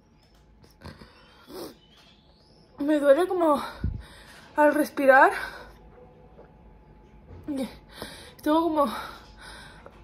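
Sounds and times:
woman speaking: 2.8 - 5.8, 7.4 - 9.3
woman breathing heavily: 3.6 - 4.6, 7.8 - 10.0.

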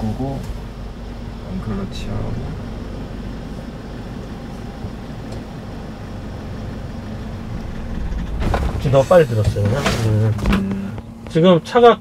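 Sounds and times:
truck engine low rumble: 0.0 - 12.0.

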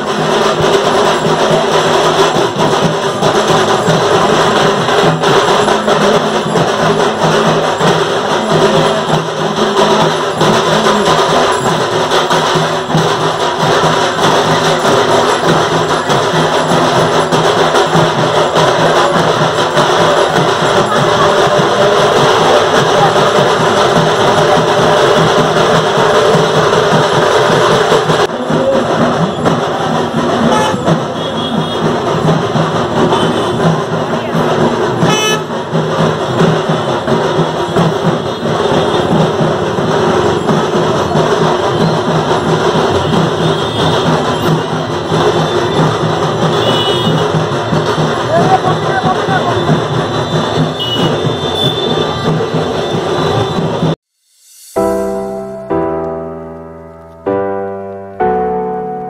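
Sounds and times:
loud drumming with music: 0.0 - 56.0.

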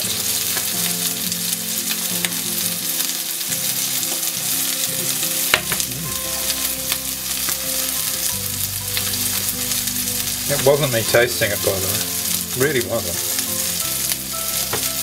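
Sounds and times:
fat sizzling in a frying pan: 0.0 - 15.0
soft background music: 0.0 - 15.0.

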